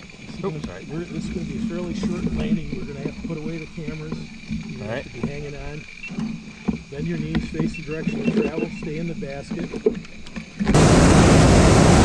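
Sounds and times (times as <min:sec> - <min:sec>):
people talking indistinctly: 0:00.3 - 0:09.8
faint steady high tone: 0:07.6 - 0:09.1.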